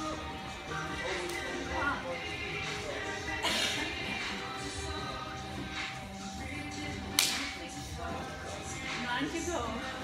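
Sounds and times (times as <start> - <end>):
background music: 0.0 - 10.0
high-five hand slap: 7.1 - 7.5.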